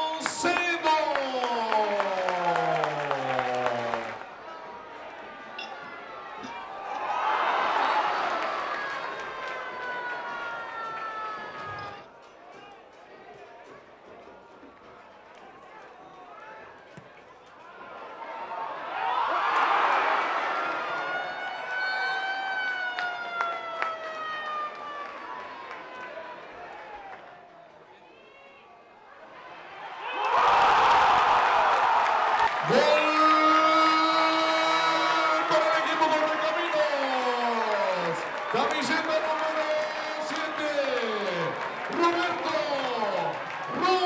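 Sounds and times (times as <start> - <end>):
stadium announcer calling out: 0.0 - 4.3, 32.6 - 44.0
crowd clapping in rhythm: 0.0 - 4.4, 30.5 - 33.8, 34.9 - 44.0
stadium crowd noise: 0.0 - 44.0.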